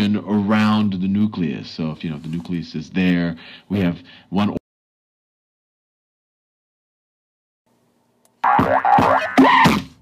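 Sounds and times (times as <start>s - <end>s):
cartoon springy sliding-pitch sounds: 8.4s - 9.8s.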